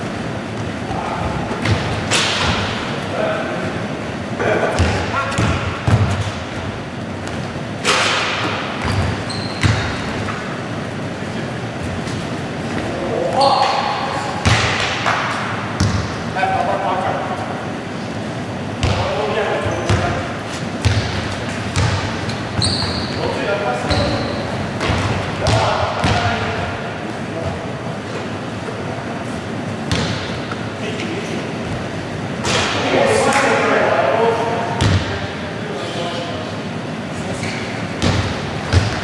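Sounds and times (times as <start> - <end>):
basketball bouncing on wooden floor: 4.8 - 6.4, 8.8 - 10.3, 15.8 - 16.1, 20.8 - 23.1, 24.8 - 26.4, 29.9 - 30.4, 38.0 - 39.0
sneaker squeaks: 7.2 - 10.7, 11.8 - 16.1, 18.8 - 26.2, 37.2 - 39.0.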